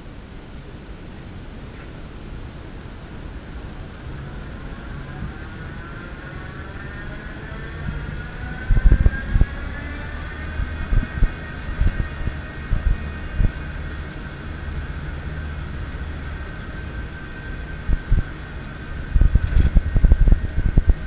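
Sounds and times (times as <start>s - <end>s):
ride drive whine and rumble: 0.0s - 21.0s
wind buffeting microphone: 1.5s - 21.0s.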